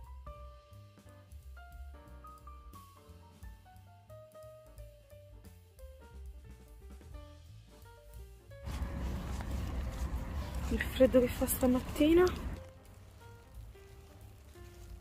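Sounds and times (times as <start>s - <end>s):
light melody with bass and drum beat: 0.0s - 15.0s.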